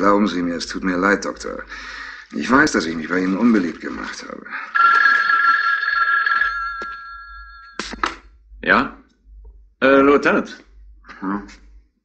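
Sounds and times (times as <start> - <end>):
telephone bell ringing: 4.6 - 7.8.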